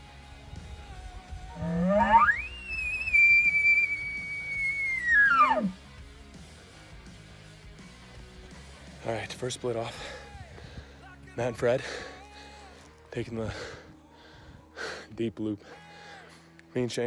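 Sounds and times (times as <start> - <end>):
elk call through tube: 1.5 - 5.8.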